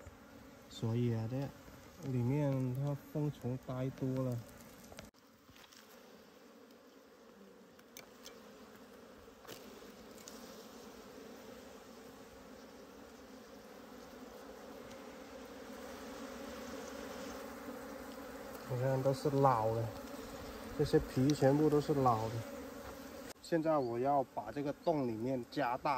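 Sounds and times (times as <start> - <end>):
bees buzzing: 0.0 - 25.9.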